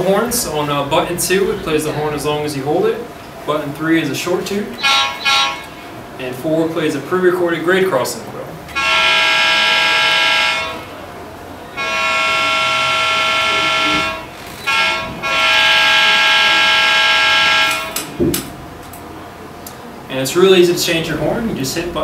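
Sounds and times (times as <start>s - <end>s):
diesel air horn blasts: 4.7s - 6.0s, 8.7s - 18.2s.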